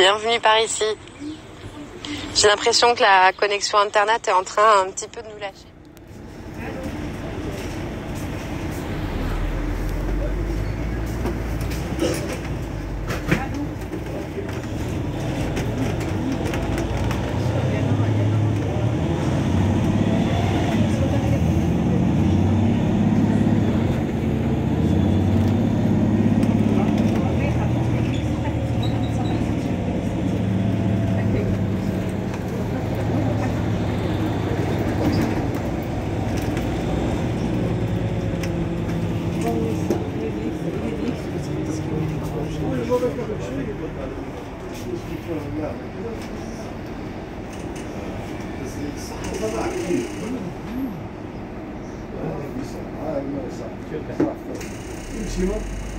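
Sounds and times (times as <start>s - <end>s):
diesel bus engine idling: 5.8s - 53.6s, 55.0s - 55.9s.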